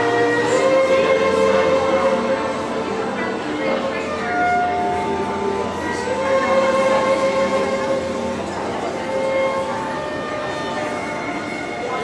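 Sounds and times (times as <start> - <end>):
amplified violin playing: 0.0 - 12.0.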